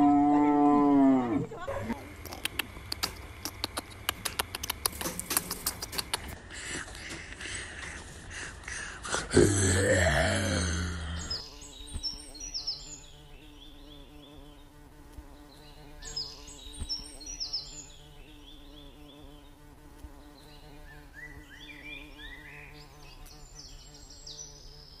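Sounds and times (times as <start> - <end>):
low buzzing hum: 0.0 - 25.0
high falling bird chirps: 10.7 - 25.0.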